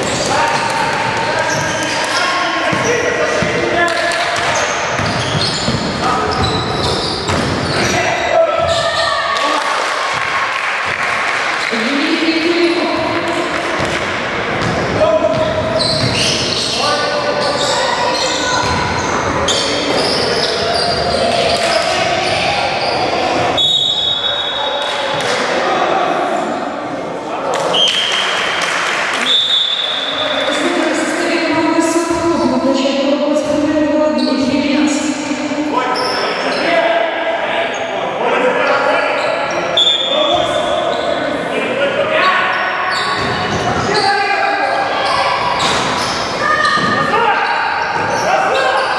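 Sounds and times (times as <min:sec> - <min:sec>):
basketball bouncing on wooden floor: 0:04.4 - 0:07.6, 0:14.6 - 0:16.2
referee's whistle blasts: 0:23.6 - 0:24.7, 0:39.8 - 0:40.2.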